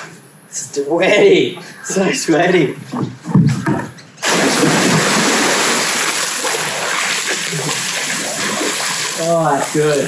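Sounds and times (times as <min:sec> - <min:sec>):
pool water splashing: 0:04.2 - 0:10.0.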